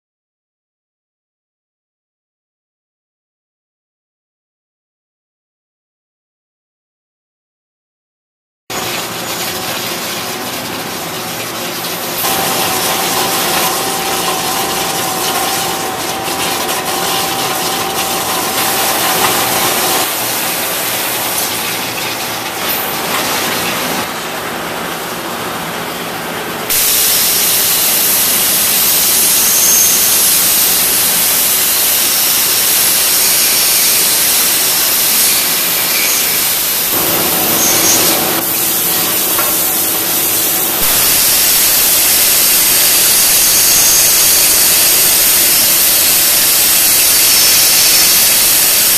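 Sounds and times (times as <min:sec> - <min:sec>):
machine steady mechanical hiss: 0:11.8 - 0:24.1, 0:26.7 - 0:48.9
compressed air hissing: 0:12.2 - 0:21.3, 0:26.7 - 0:48.9.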